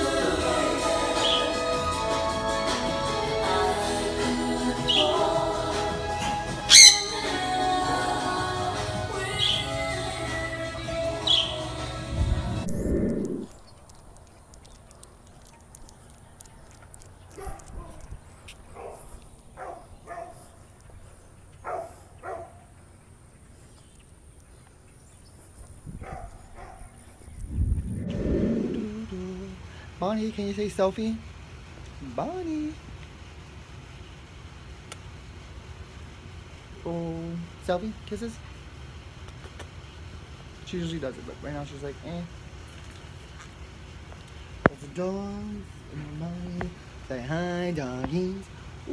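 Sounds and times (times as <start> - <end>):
background music: 0.0 - 12.7
parrot chirping: 6.7 - 7.3
parrot squawking: 6.7 - 7.3
low rumble on microphone: 12.0 - 16.0, 25.4 - 29.8.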